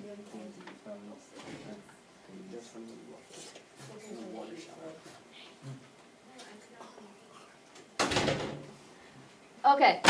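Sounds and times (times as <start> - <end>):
door closing thud: 8.0 - 8.7.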